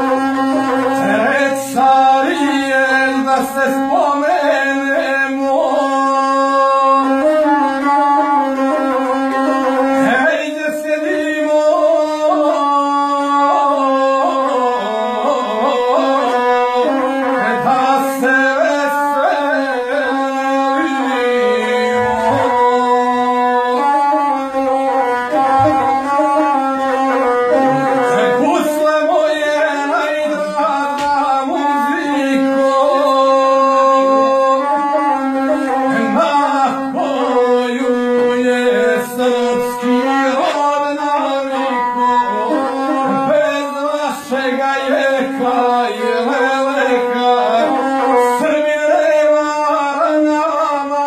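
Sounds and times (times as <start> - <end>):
bowed single-string fiddle melody: 0.0 - 51.0
man singing: 0.0 - 51.0.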